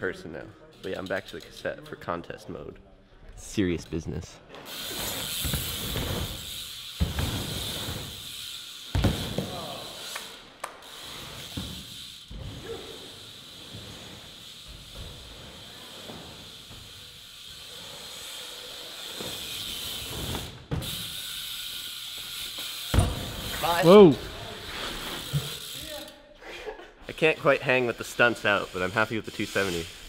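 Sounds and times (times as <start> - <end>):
bicycle hub freewheel buzz: 4.6 - 26.2, 27.1 - 30.0
sharp thumps from bike: 5.2 - 8.2, 8.9 - 9.5, 11.5 - 12.6, 22.9 - 23.5.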